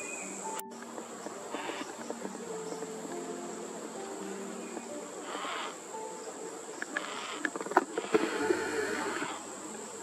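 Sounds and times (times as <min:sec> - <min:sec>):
high-pitched insect drone: 0:00.0 - 0:10.0.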